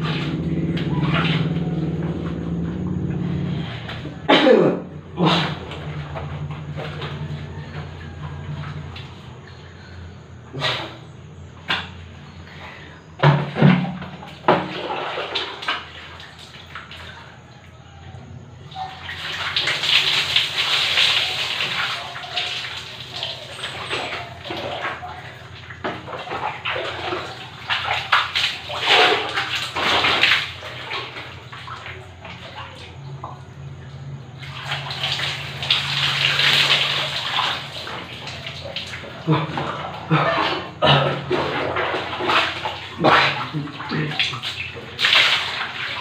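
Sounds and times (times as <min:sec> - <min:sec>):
water pouring onto concrete: 0:13.3 - 0:17.2, 0:18.8 - 0:33.3, 0:34.3 - 0:46.0.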